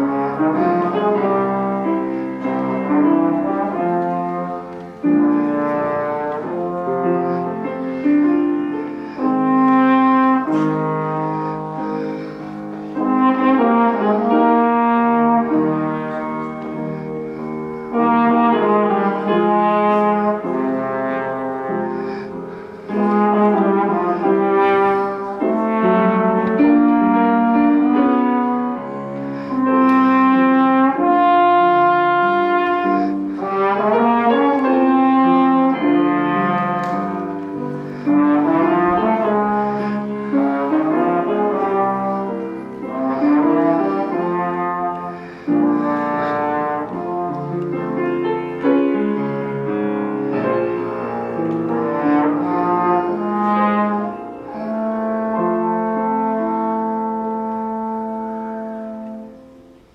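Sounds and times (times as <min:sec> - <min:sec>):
piano accompaniment: 0:00.0 - 0:59.9
slide trombone melody: 0:00.0 - 0:59.9.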